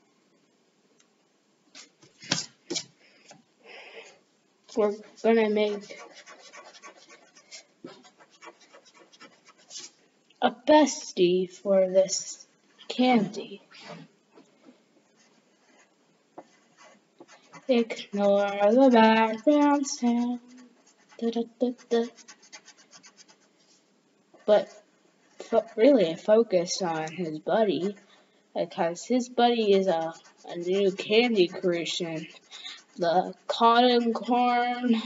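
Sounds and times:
pencil scratching on paper: 4.7 - 10.0, 15.1 - 23.8, 24.4 - 28.1, 29.5 - 35.0.

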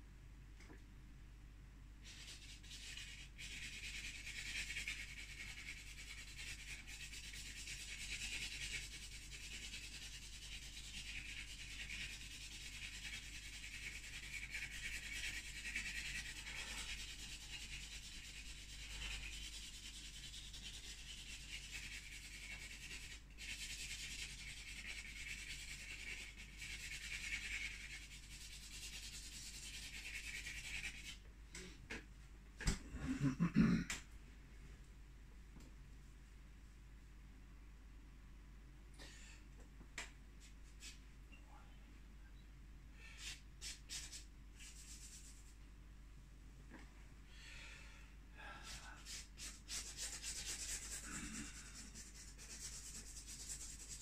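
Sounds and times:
charcoal scratching on canvas: 2.0 - 31.2, 43.1 - 45.6, 48.7 - 54.0.

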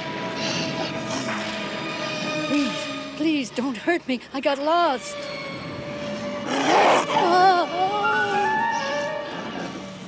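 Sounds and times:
loud rough animal growl: 6.5 - 7.2.

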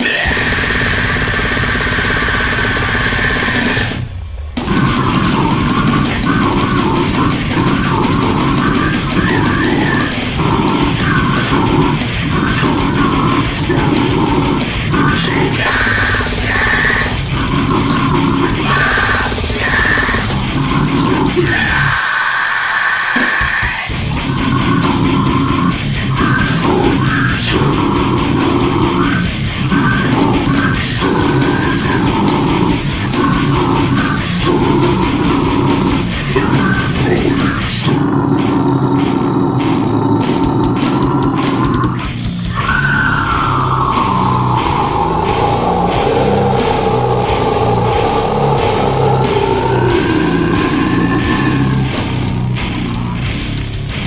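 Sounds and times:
man screaming vocals: 0.0 - 4.0, 4.7 - 53.3
death metal music: 0.0 - 54.0.

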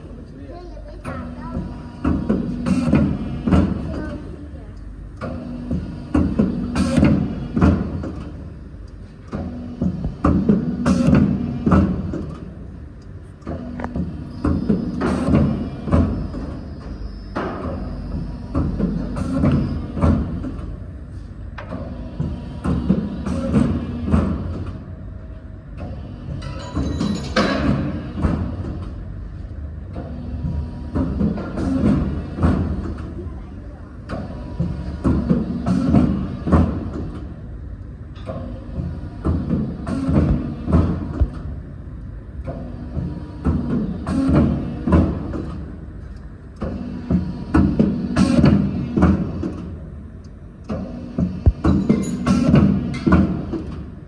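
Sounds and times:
hydraulic drive hum: 0.0 - 54.0.

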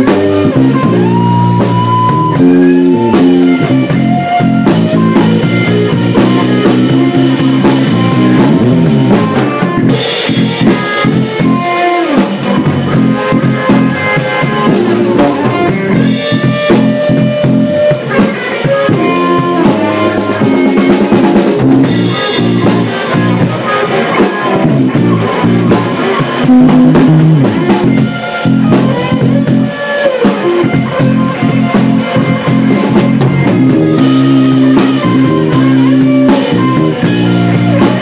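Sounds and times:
drum kit: 0.0 - 38.0
electric bass: 0.0 - 38.0
electric guitar: 0.0 - 38.0.

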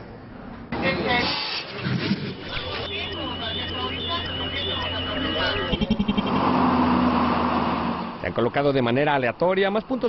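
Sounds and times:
voices: 0.4 - 6.5
vehicle engine rushing: 1.6 - 9.1
steady high tone: 2.5 - 6.8
low hum: 3.7 - 8.2.

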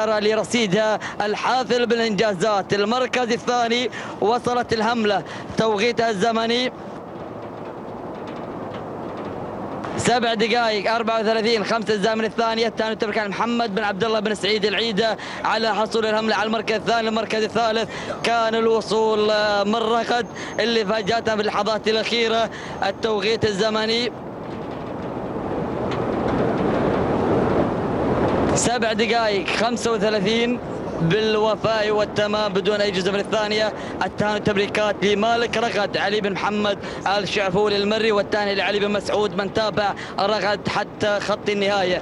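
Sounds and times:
outdoor rumble and hiss: 0.0 - 42.0.

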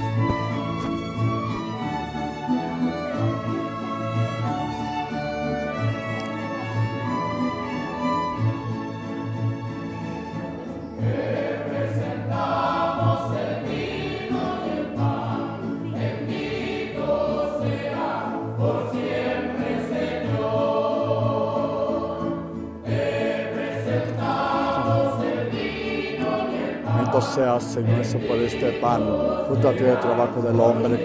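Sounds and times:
group singing a hymn: 0.0 - 9.0, 10.8 - 31.0
guitars: 0.0 - 31.0.

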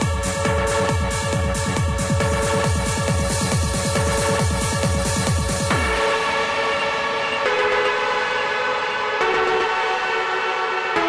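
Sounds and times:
held synthesizer chords: 0.0 - 11.0.

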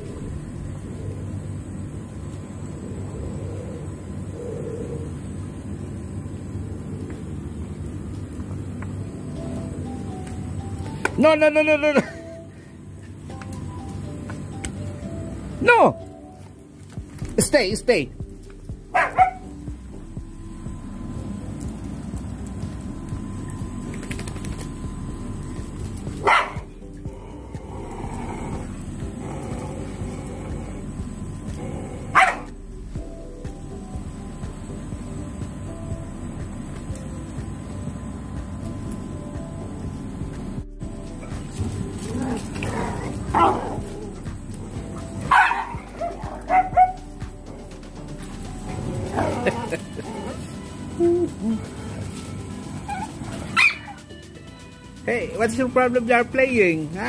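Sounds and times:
dogs barking: 18.8 - 19.7, 25.7 - 32.6, 41.2 - 47.7, 48.6 - 50.6, 52.0 - 54.2
dogs yipping and whining: 18.9 - 19.6, 26.1 - 30.7, 31.4 - 32.6, 41.2 - 47.2, 48.7 - 54.2.

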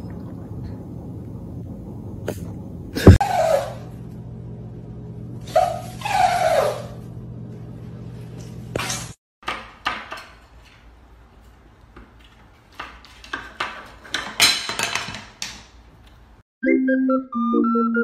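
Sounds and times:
low hum: 0.0 - 3.2.

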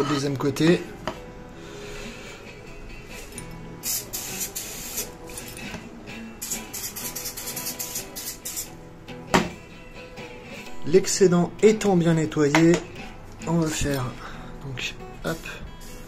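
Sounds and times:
soft guitar music: 0.0 - 16.0
aerosol can spraying: 3.8 - 5.5, 6.4 - 8.7.

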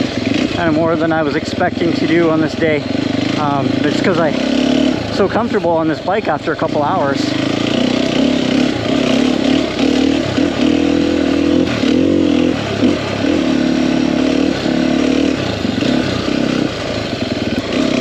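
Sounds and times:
dirt bike engine revving: 0.0 - 18.0.

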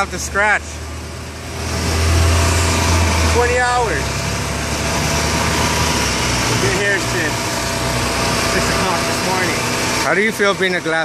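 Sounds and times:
engine humming: 0.0 - 11.0.

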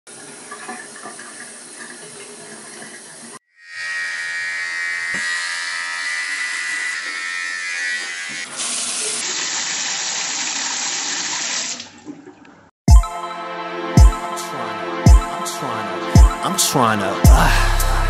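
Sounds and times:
shower water hissing: 8.5 - 11.8.

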